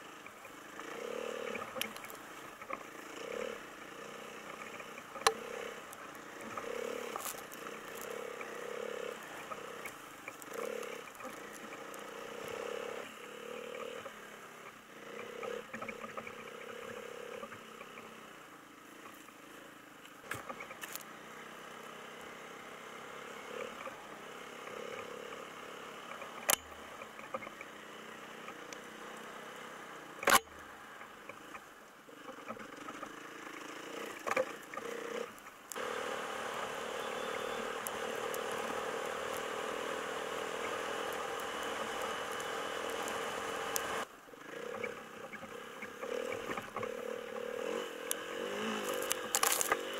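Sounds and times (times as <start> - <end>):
snowmobile engine running: 0.0 - 18.2, 32.6 - 49.9.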